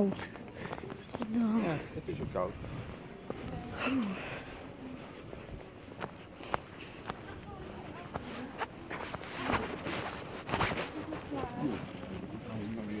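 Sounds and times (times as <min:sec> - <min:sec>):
footsteps on brick paving: 0:00.0 - 0:13.0.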